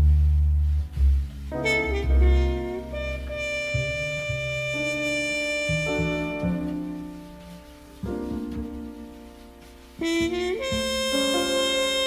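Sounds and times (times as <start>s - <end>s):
double bass: 0.0s - 12.0s
soft piano: 0.0s - 12.0s
horn holding long notes: 1.6s - 7.1s, 10.0s - 12.0s.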